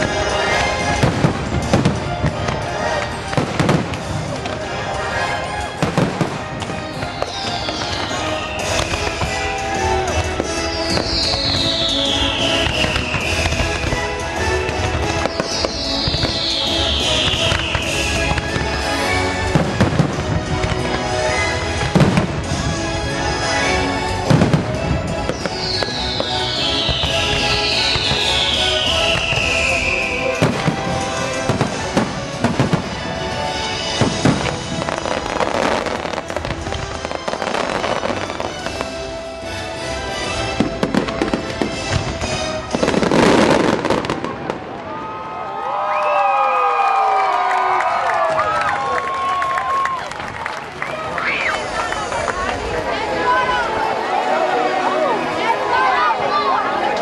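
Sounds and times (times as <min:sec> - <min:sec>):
fireworks bursting: 0:00.0 - 0:45.2
orchestral show music: 0:00.0 - 0:45.9, 0:46.6 - 0:57.0.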